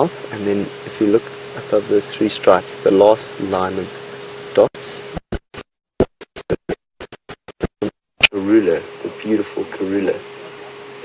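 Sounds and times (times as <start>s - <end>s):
person speaking: 0.0s - 10.2s.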